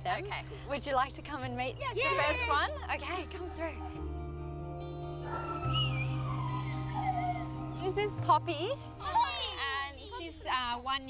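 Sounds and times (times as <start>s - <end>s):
background music low notes: 0.0s - 11.0s
dog whining: 5.2s - 7.8s.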